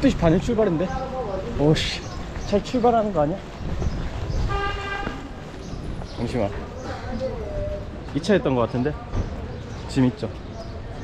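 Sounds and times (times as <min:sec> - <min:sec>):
low street rumble: 0:00.0 - 0:11.0
vehicle horn toot: 0:04.5 - 0:05.3.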